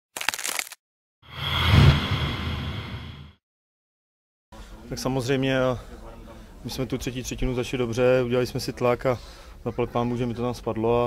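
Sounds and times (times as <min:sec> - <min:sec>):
rumble: 0:01.3 - 0:03.4.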